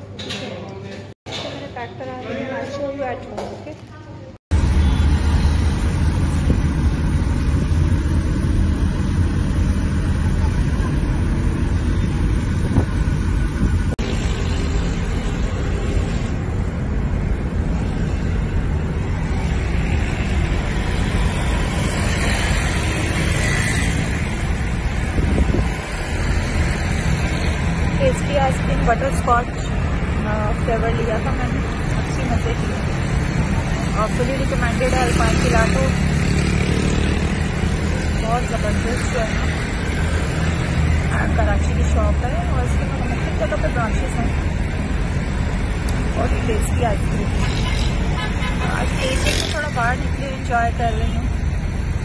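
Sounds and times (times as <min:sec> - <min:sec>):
wind buffeting microphone: 0:05.6 - 0:14.0, 0:24.5 - 0:26.2.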